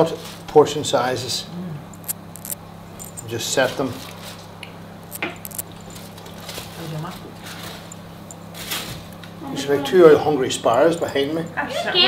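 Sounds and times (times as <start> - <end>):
low hum: 1.7 - 3.4, 4.9 - 6.2
tin foil crinkling: 5.1 - 9.2.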